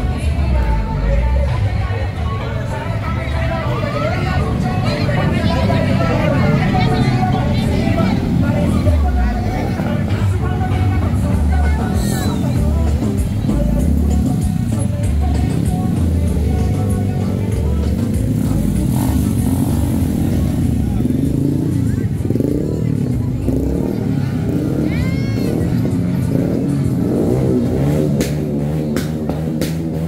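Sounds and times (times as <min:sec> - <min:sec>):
crowd voices: 0:00.0 - 0:30.0
loud music over loudspeakers: 0:00.0 - 0:30.0
motorcycle engines passing slowly: 0:00.0 - 0:30.0.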